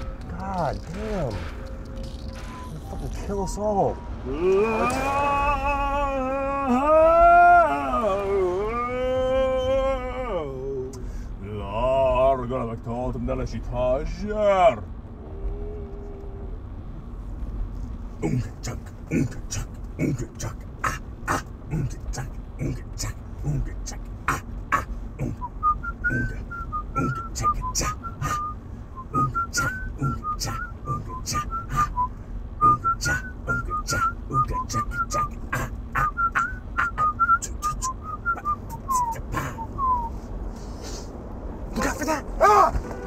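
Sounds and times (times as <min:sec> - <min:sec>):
person whistling a tune: 0:25.4 - 0:35.3, 0:36.0 - 0:40.2.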